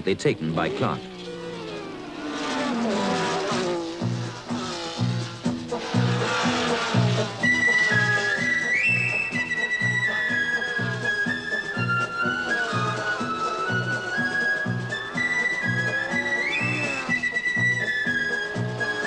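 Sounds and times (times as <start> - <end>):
racing car engines passing: 0.0 - 19.0
film music with pulsing beat: 4.0 - 19.0
high flute-like melody: 7.4 - 19.0.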